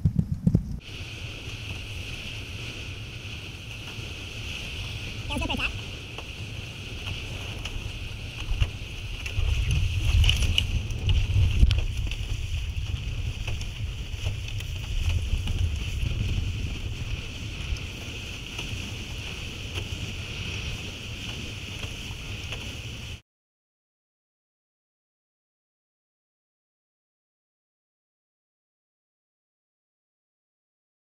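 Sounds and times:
water rushing past hulls: 0.0s - 23.2s
wind buffeting microphone: 0.0s - 23.2s.

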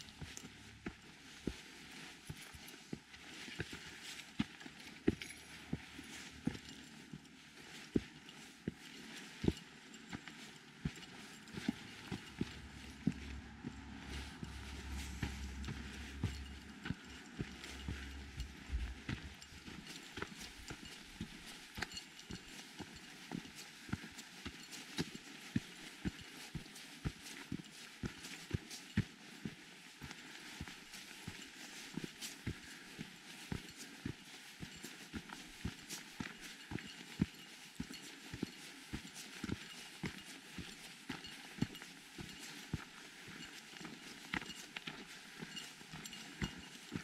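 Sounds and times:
footsteps on dirt trail: 0.0s - 47.0s
low rumble: 11.8s - 19.7s.

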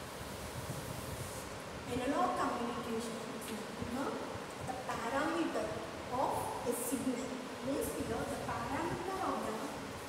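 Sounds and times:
room hiss: 0.0s - 10.0s
woman talking: 1.9s - 9.8s.

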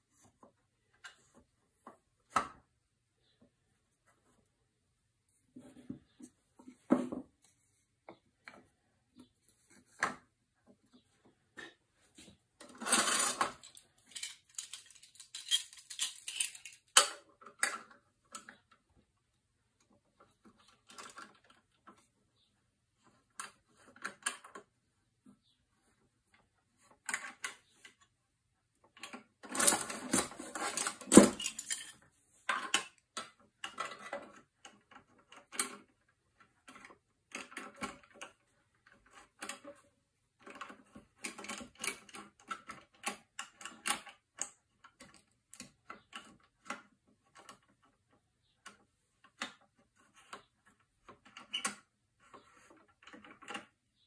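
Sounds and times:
metal clamps clicking and rattling: 12.6s - 18.6s, 29.0s - 35.9s.

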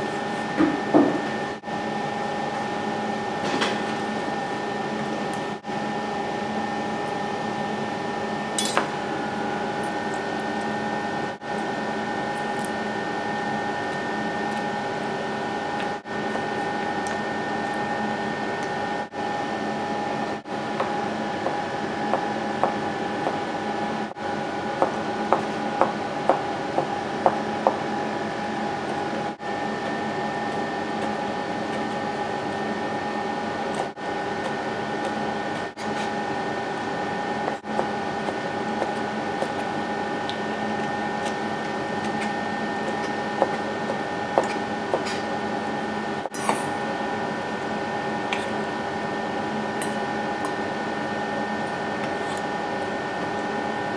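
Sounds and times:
knife clatter: 8.6s - 8.8s.

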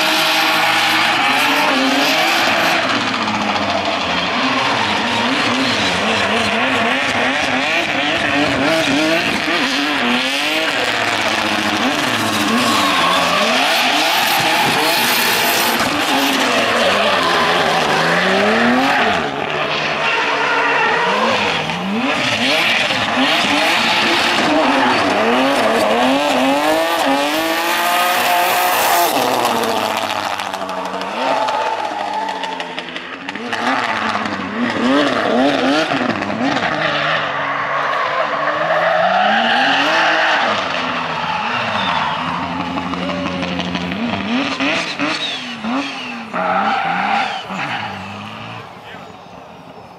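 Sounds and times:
car engine revving: 0.0s - 49.9s
tyres squealing: 10.7s - 25.9s.

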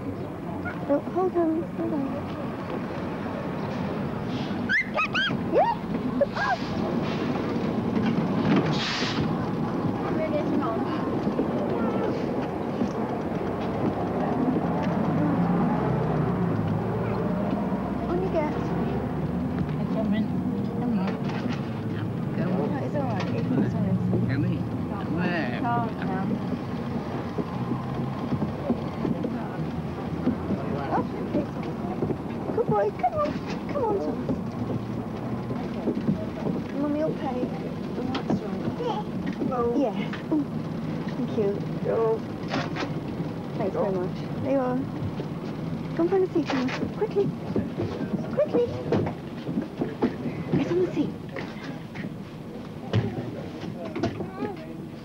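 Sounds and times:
bus diesel engine rumble: 0.0s - 55.0s
brief hiss: 8.7s - 9.3s.

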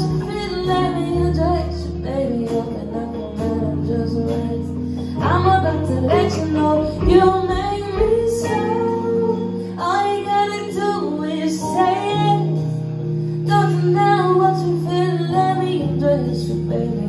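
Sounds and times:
live band playing: 0.0s - 17.0s
woman singing: 0.0s - 17.0s.

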